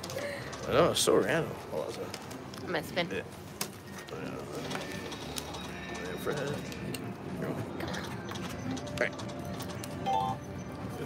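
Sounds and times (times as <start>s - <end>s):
background chatter: 0.0s - 9.9s
slot machine electronic tones: 7.8s - 11.0s.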